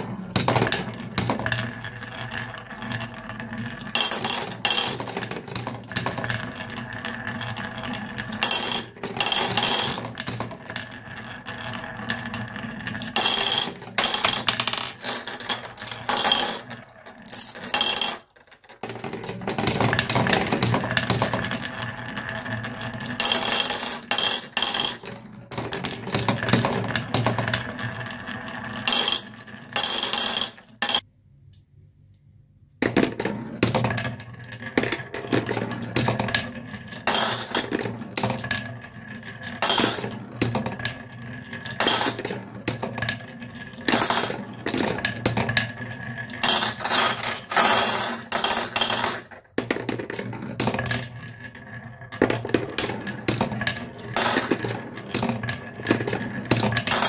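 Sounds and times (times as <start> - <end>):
marbles clacking on blocks: 0.0 - 31.0, 32.8 - 57.0
marbles rolling on wooden track: 0.0 - 31.1, 32.8 - 57.0.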